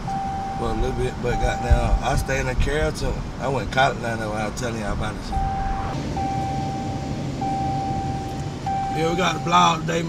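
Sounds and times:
car cabin rumble: 0.0s - 10.0s
high-pitched tone: 5.2s - 9.7s.

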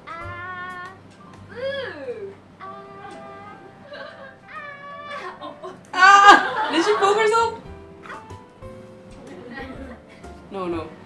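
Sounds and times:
background music: 0.0s - 11.0s
high whining cry: 1.5s - 6.7s.

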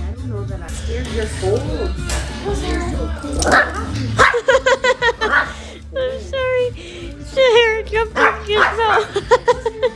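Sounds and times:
small dog barking: 8.2s - 9.0s.

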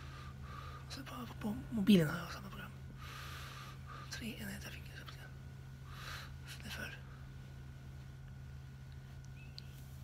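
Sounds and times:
breathy hiss: 0.0s - 1.2s, 3.0s - 4.3s, 5.8s - 7.3s
steady low hum: 0.0s - 10.0s
man whispering: 4.1s - 5.4s, 6.4s - 7.1s.

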